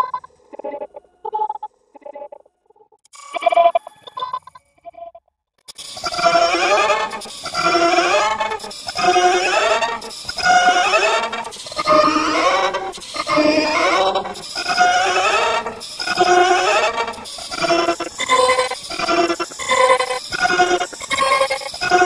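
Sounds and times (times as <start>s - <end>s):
effect-processed wavering pitched sound: 5.9s - 20.6s.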